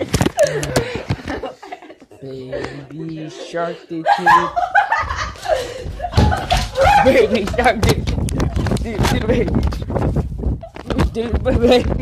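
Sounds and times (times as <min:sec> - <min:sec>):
people laughing: 0:00.0 - 0:08.8.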